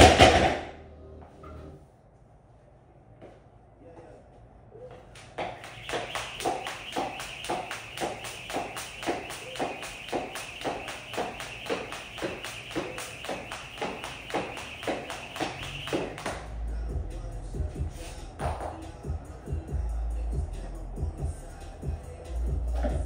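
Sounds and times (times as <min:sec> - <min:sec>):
jump rope slapping floor mat: 0:05.2 - 0:16.4
rope whirring through air: 0:05.6 - 0:16.3.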